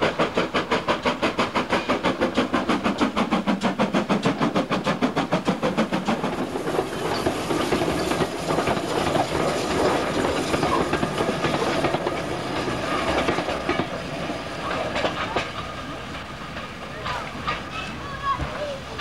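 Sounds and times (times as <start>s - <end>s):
steam locomotive exhaust: 0.0s - 19.0s
train wheels clattering over rail joints: 0.0s - 19.0s.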